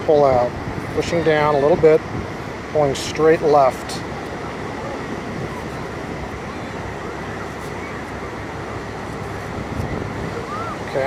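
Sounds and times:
surf: 0:00.0 - 0:11.0
wind on microphone: 0:00.0 - 0:11.0.

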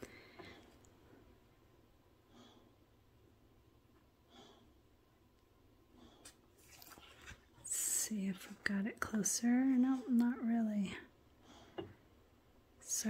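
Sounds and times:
faint breaths: 0:00.0 - 0:01.4, 0:02.2 - 0:03.1, 0:04.2 - 0:05.0, 0:10.9 - 0:12.3.

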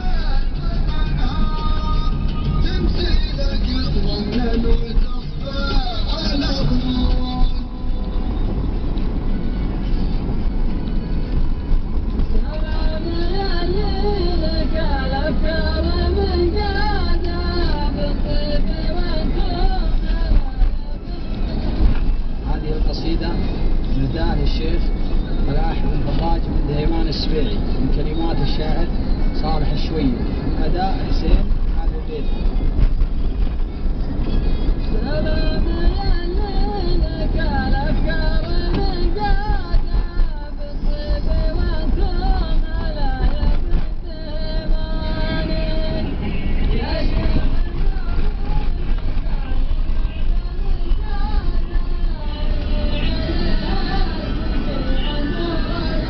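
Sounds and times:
car road and engine rumble: 0:00.0 - 0:56.0.

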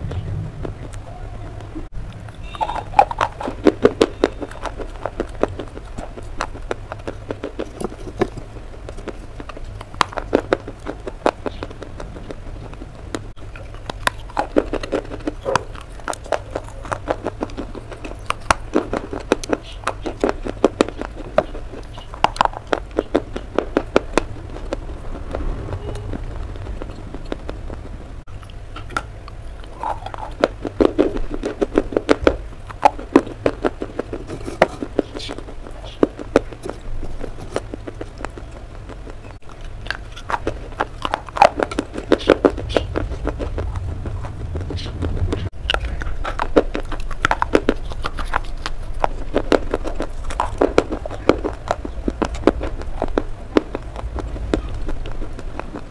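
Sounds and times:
crunchy chewing: 0:00.0 - 0:55.9.

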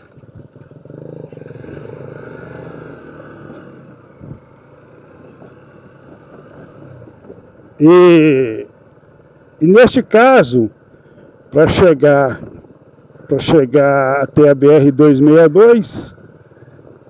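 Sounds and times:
motorcycle engine running: 0:00.0 - 0:14.6, 0:16.1 - 0:17.0.

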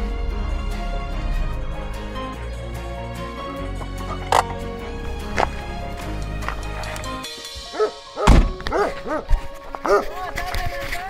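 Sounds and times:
dog barking: 0:07.7 - 0:10.2
car door shutting: 0:08.2 - 0:08.8.

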